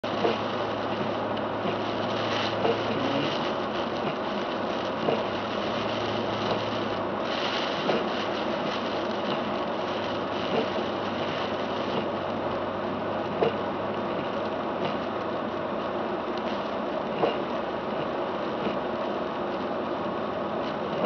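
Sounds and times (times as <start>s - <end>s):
windshield wiper sweeping: 0.0s - 12.5s, 13.3s - 15.1s, 15.8s - 19.8s
low engine hum: 0.0s - 21.0s
tyres on wet slushy road: 0.0s - 21.0s.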